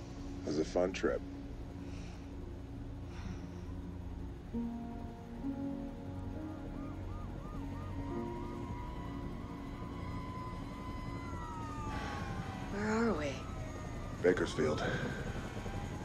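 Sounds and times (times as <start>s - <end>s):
film score held notes: 0.0s - 16.0s
low helicopter rumble: 0.0s - 16.0s
wailing siren: 3.7s - 16.0s
siren yelping: 5.7s - 16.0s.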